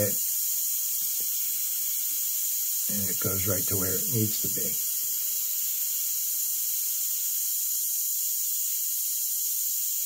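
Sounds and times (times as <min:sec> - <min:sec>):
airbrush blowing air hiss: 0:00.0 - 0:10.0.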